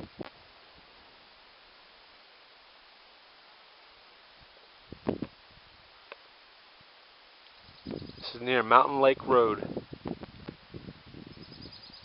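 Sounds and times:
wind gusting on microphone: 0:04.8 - 0:05.9, 0:07.6 - 0:12.0
rapid high chirping: 0:07.5 - 0:08.4, 0:11.3 - 0:12.0.

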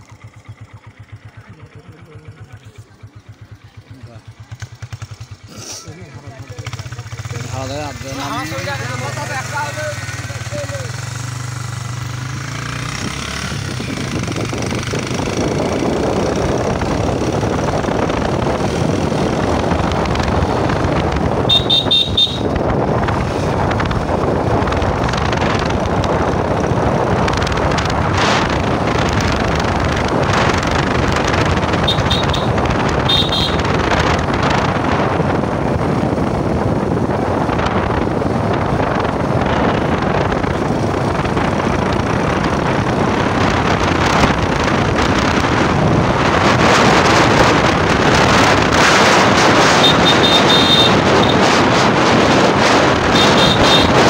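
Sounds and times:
motorcycle engine running: 0:00.0 - 0:54.0
wind rushing on microphone: 0:07.7 - 0:54.0
horn beeping: 0:21.4 - 0:22.6, 0:31.7 - 0:33.8, 0:49.7 - 0:51.4, 0:53.1 - 0:54.0.

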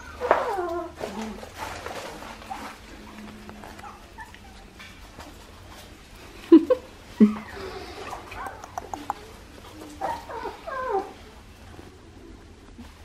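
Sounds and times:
puppies whimpering: 0:00.0 - 0:05.8, 0:06.8 - 0:11.9.

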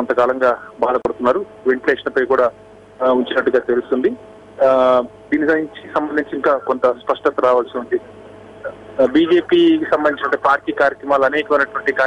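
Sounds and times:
man talking over telephone: 0:00.0 - 0:12.0.

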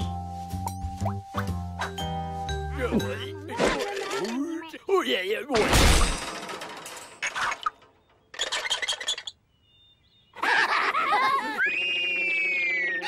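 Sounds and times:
cartoon shattering crash: 0:05.6 - 0:06.5.

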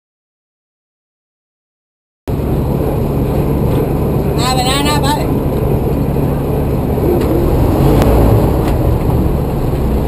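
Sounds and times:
ferry engine rumbling: 0:02.3 - 0:10.0.

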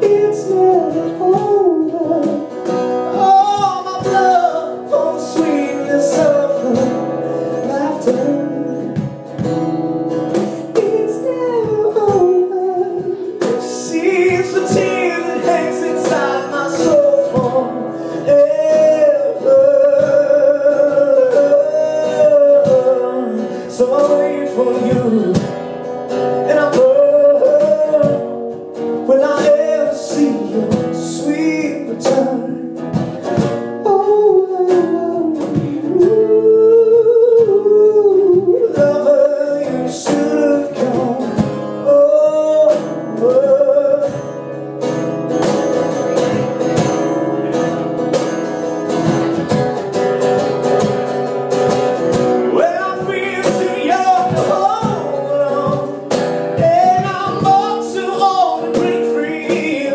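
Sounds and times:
cajon beating: 0:00.0 - 0:59.9
man singing: 0:00.0 - 0:59.9
strummed acoustic guitar: 0:00.0 - 0:59.9.

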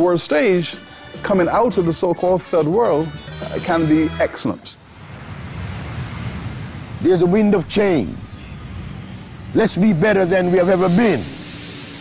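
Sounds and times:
jet airliner engines rumbling: 0:04.7 - 0:12.0.

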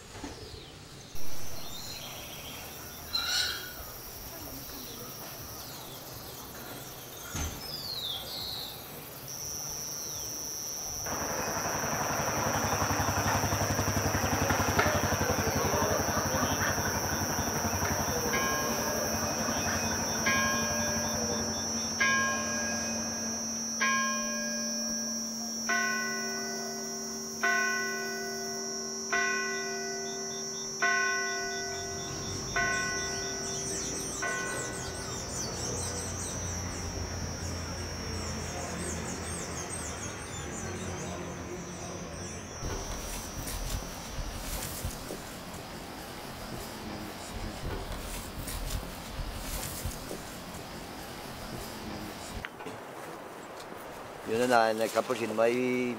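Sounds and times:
high-pitched drone: 0:10.8 - 0:40.4, 0:41.3 - 0:50.9
church bell tolling: 0:11.1 - 0:38.8.

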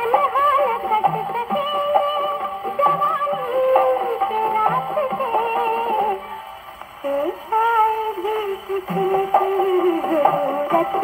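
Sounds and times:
woman singing on gramophone record: 0:00.0 - 0:11.0.

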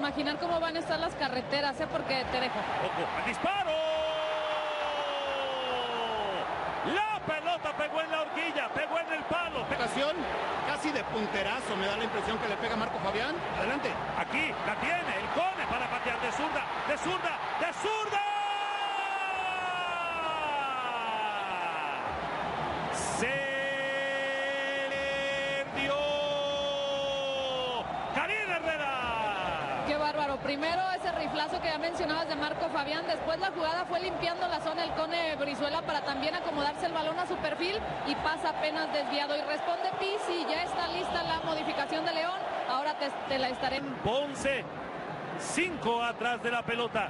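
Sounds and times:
broadcast background noise: 0:00.0 - 0:47.0.

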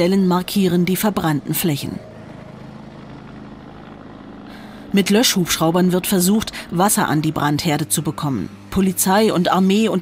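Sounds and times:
low engine-like drone: 0:00.0 - 0:10.0.

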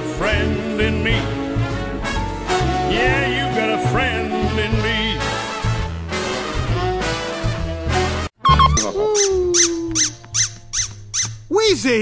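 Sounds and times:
squeaky toy squeaking: 0:08.4 - 0:11.5.

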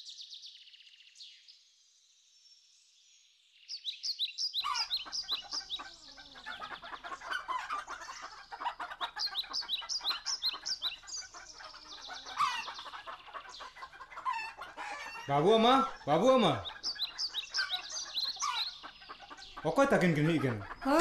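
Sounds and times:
small birds chirping: 0:00.0 - 0:21.0
chickens clucking: 0:04.6 - 0:21.0.

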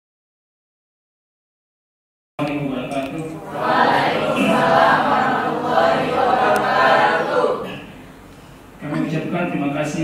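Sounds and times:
group of voices reciting in unison: 0:03.4 - 0:08.0.

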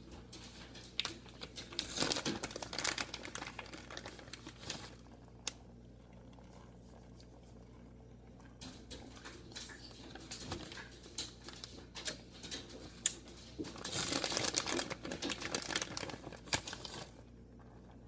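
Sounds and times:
plastic bag crinkling: 0:00.0 - 0:05.6, 0:08.9 - 0:17.2.

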